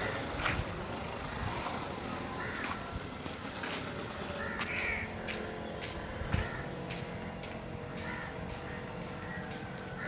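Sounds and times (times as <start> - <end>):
birds calling: 0.0 - 10.0.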